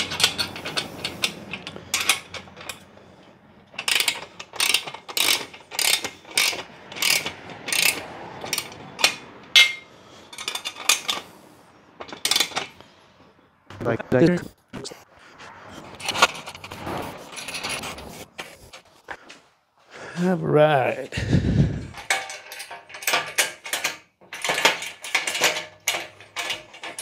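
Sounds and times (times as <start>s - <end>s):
ratchet wrench clicking: 0.0s - 2.9s, 3.8s - 11.2s, 12.1s - 12.7s.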